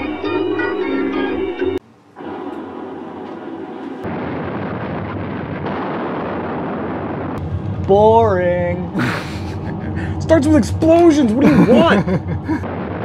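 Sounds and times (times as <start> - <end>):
organ music: 0.0 - 4.0
volcanic eruption noise: 4.0 - 13.0.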